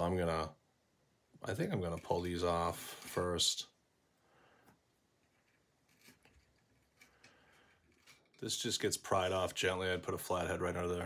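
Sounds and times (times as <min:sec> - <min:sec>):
faint short ticks and rubs: 0:05.2 - 0:08.5.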